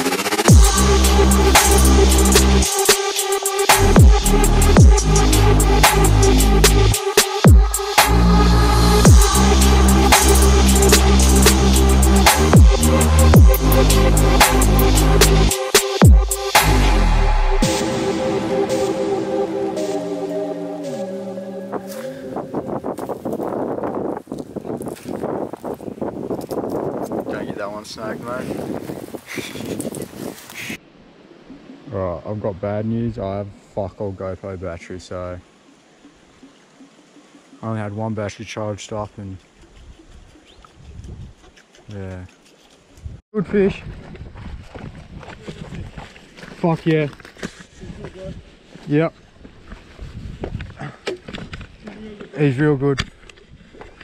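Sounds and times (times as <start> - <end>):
footsteps through dry grass: 21.7 - 30.8, 39.4 - 52.4.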